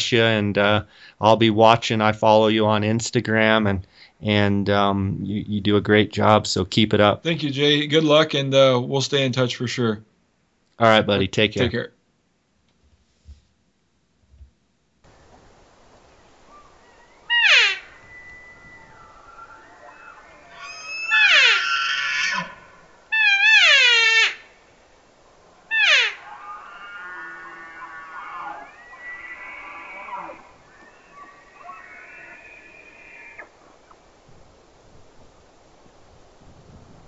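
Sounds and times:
elk bugling: 15.1s - 34.2s.

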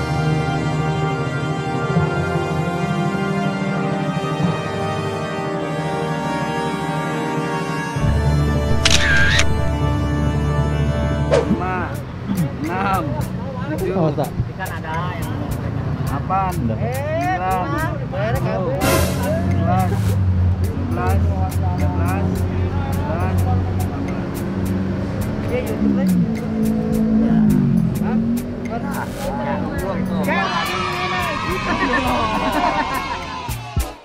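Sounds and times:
background music: 0.0s - 34.0s
men chatting and laughing: 8.0s - 9.8s, 10.8s - 34.0s
vehicle engine running: 17.8s - 30.2s.

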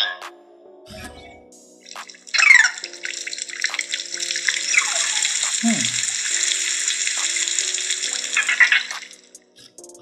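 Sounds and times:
rain-like hiss from small speaker: 2.3s - 9.3s.

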